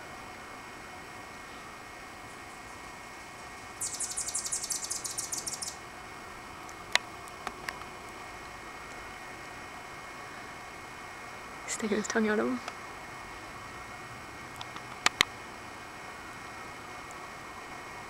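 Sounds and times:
hummingbird chatter: 3.8 - 5.8.

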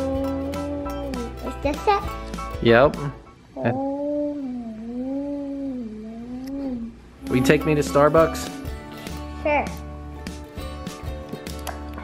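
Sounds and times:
child humming engine noise: 0.0 - 1.9, 3.6 - 7.4.

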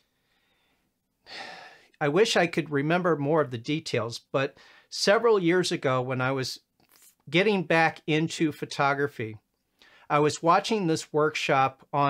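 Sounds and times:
man breathing through the mouth: 0.0 - 2.0.

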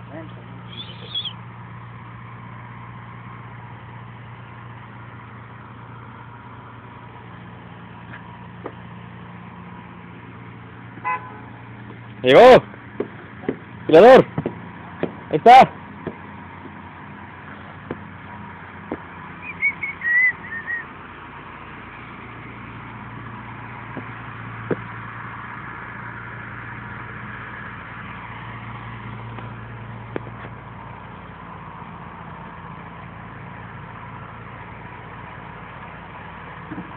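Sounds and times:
low engine hum: 0.0 - 36.9
short high chirps: 0.7 - 1.4.

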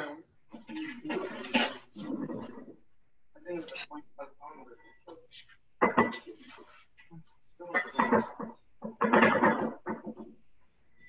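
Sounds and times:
indistinct talking over video call: 0.0 - 11.0.

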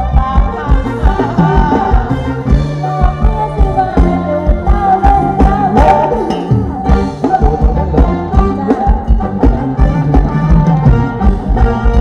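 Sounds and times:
dance band music over speakers: 0.0 - 12.0.

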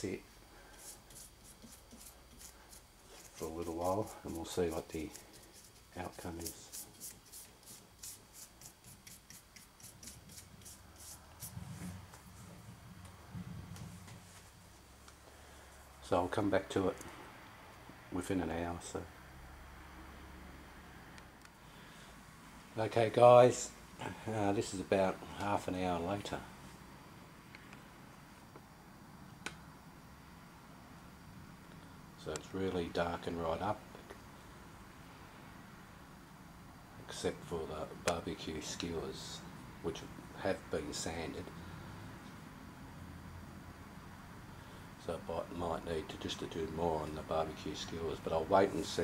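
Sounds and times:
paintbrush strokes on wood: 0.1 - 12.7.

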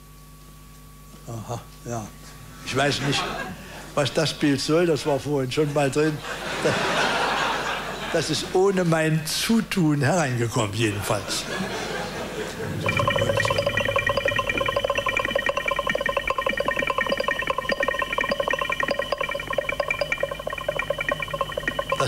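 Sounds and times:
electronic chord: 12.6 - 22.0.

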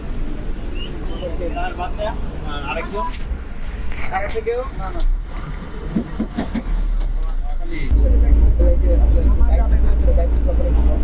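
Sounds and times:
bus rumbling from inside: 0.0 - 11.0.

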